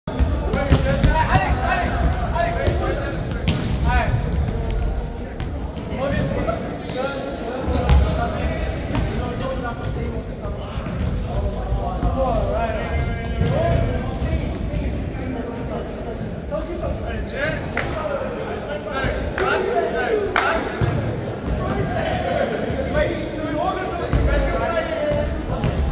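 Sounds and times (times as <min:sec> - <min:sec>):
players' indistinct voices and calls: 0:00.1 - 0:25.9.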